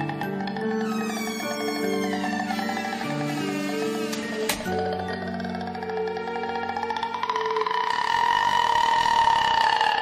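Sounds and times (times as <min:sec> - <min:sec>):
dark horror music drone: 0:00.0 - 0:10.0.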